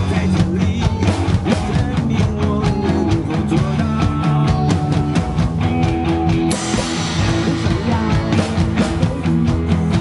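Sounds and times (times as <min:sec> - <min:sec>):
drum kit playing: 0:00.0 - 0:10.0
recorded pop-rock song: 0:00.0 - 0:10.0.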